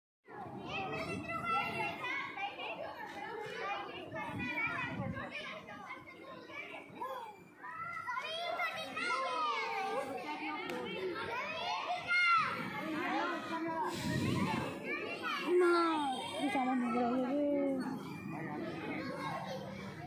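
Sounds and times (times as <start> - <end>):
children chattering and calling: 0.3 - 20.0.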